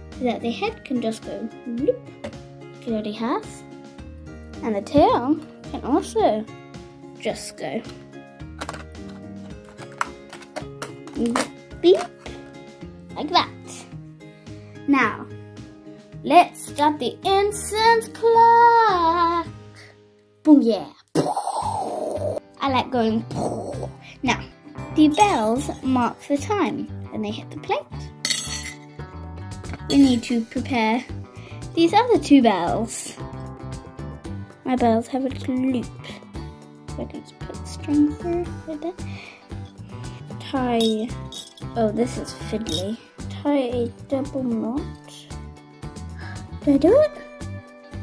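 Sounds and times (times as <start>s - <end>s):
background music with held notes: 0.0s - 48.0s
child's voice: 0.2s - 2.0s, 2.8s - 3.6s, 4.6s - 6.5s, 7.2s - 7.9s, 11.1s - 12.2s, 13.1s - 13.9s, 14.9s - 15.3s, 16.2s - 22.0s, 22.6s - 28.0s, 29.9s - 31.1s, 31.8s - 33.2s, 34.6s - 36.0s, 37.0s - 39.1s, 40.4s - 45.4s, 46.2s - 47.2s
jingle bells clinking on plate: 25.1s - 25.8s, 28.2s - 28.9s, 29.8s - 30.4s, 40.8s - 41.8s.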